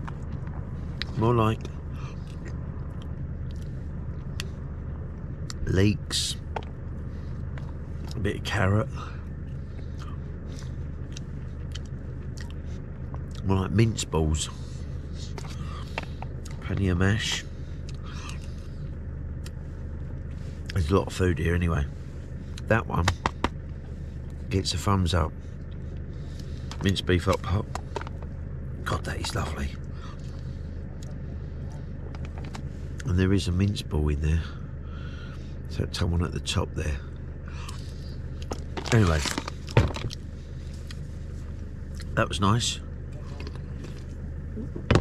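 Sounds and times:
low engine rumble: 0.0 - 45.0
steady low hum: 0.0 - 45.0.

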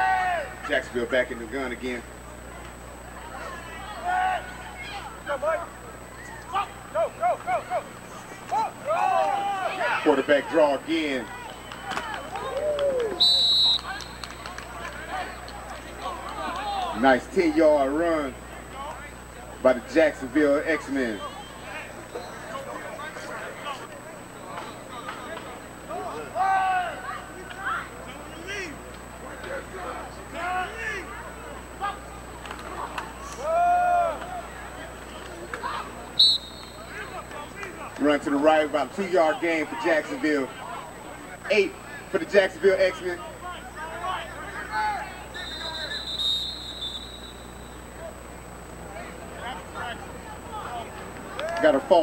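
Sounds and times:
voices shouting: 0.0 - 0.8, 2.3 - 52.0
referee's whistle blast: 13.1 - 14.5, 36.1 - 37.4, 45.2 - 48.0.

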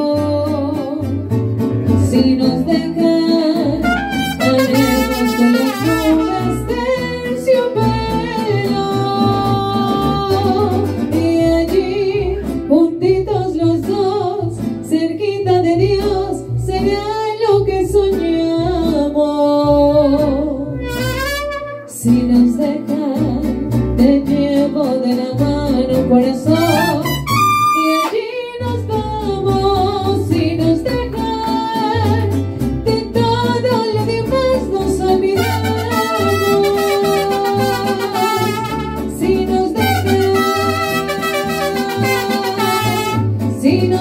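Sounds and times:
mariachi band with singing: 0.0 - 44.0.

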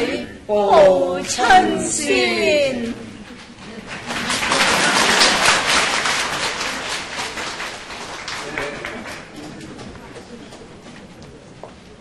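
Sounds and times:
audience applauding: 3.3 - 10.8.

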